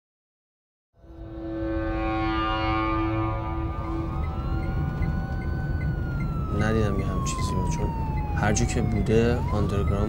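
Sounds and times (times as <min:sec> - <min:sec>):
held music chord: 0:01.0 - 0:06.8
siren rising in pitch: 0:01.0 - 0:10.0
low rumble of traffic: 0:03.2 - 0:10.0.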